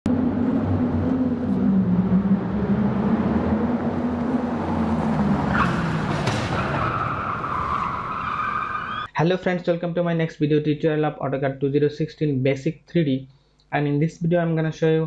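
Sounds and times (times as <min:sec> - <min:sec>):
low drone shifting pitch: 0:00.0 - 0:06.2
rising high squeal: 0:00.1 - 0:09.1.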